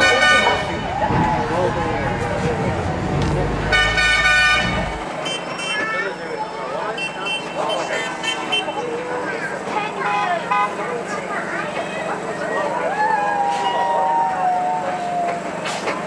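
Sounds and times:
people chattering: 0.0s - 16.0s
tram rumbling: 0.0s - 16.0s
horn toot: 3.6s - 5.8s.

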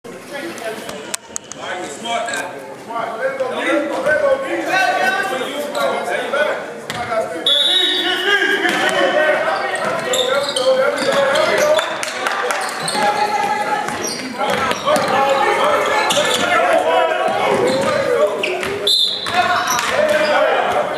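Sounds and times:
people talking and calling out: 0.1s - 20.9s.

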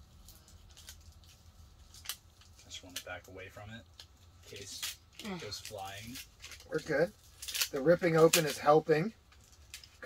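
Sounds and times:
low room hum: 0.0s - 10.0s
wrapper crinkling and tearing: 0.0s - 10.0s.

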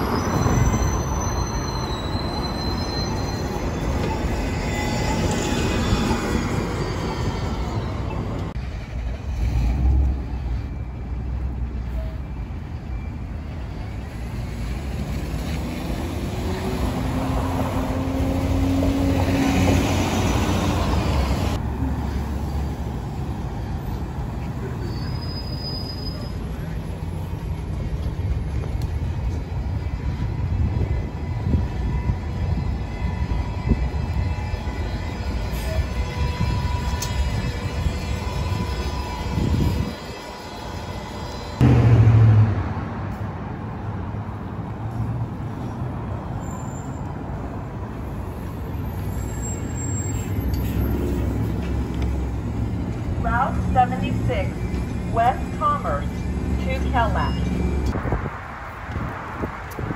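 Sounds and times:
buses driving past: 0.0s - 59.9s.

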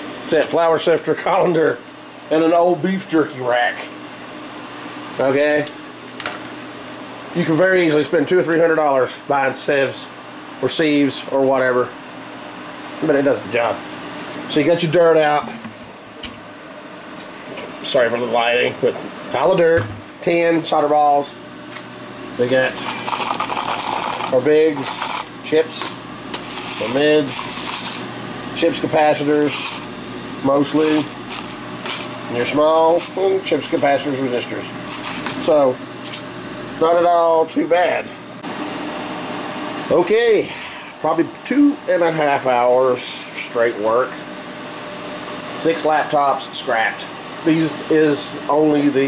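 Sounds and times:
electric fans hissing: 0.0s - 49.0s
fans rushing air: 19.6s - 41.0s.

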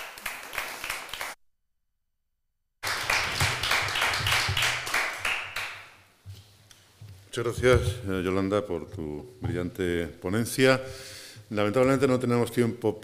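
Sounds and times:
audience applause: 0.0s - 1.4s, 2.8s - 5.9s.

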